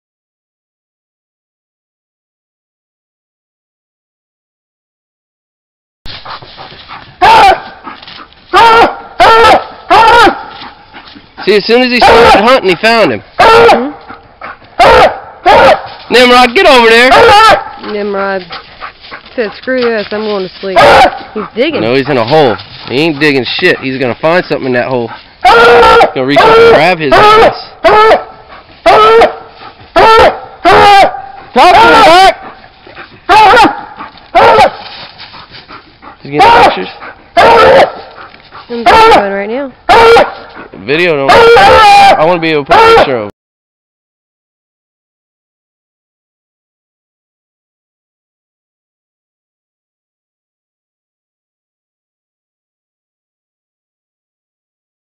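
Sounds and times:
dog baying: 0:06.2 - 0:11.1, 0:12.0 - 0:12.6, 0:13.4 - 0:15.9, 0:16.9 - 0:19.3, 0:20.8 - 0:23.9, 0:25.4 - 0:43.2.

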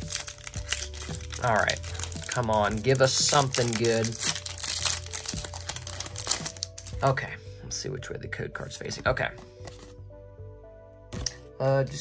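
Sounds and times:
foil wrapper crinkling: 0:00.0 - 0:07.0
quiet background music: 0:00.0 - 0:12.0.

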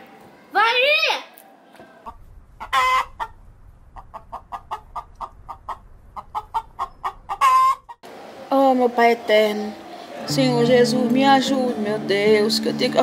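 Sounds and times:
hen clucking: 0:02.1 - 0:08.0.

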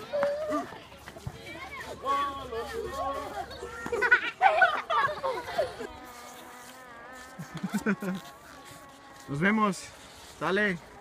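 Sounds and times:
voices: 0:00.0 - 0:11.0
faint buzzing hum: 0:02.4 - 0:11.0.

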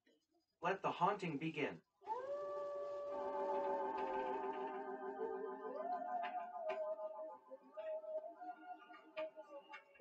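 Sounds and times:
eerie gliding tones: 0:03.2 - 0:09.4.

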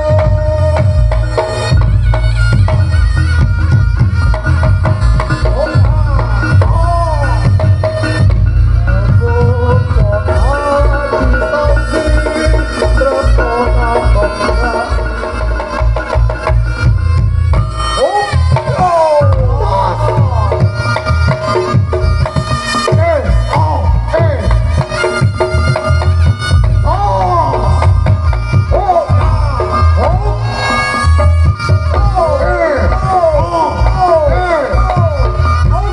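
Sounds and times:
reed trumpet wavering melody: 0:00.0 - 0:35.9
steady drum beat: 0:00.0 - 0:35.9.

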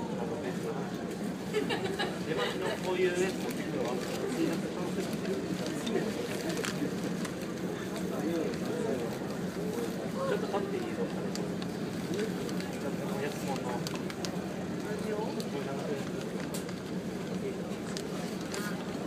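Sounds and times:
indistinct chatter of voices: 0:00.0 - 0:19.0.

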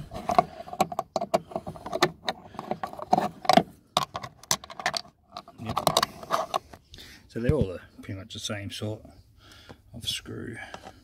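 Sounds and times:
key clicking and scraping in screw: 0:00.2 - 0:06.6.

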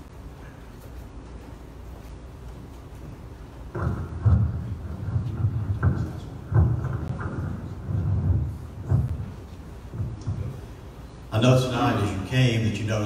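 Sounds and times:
microphone handling bumps: 0:03.0 - 0:11.1.

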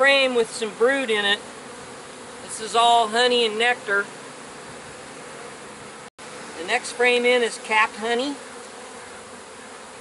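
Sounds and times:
bees buzzing: 0:00.0 - 0:10.0.

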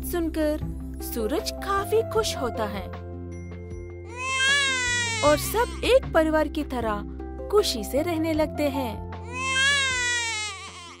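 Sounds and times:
soft background music: 0:00.0 - 0:11.0
baby vocalizing: 0:04.1 - 0:05.6, 0:09.3 - 0:11.0.

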